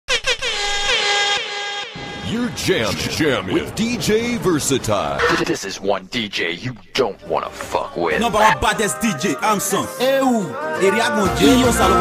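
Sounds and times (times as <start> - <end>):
air horn blasts: 0.2 - 2.4.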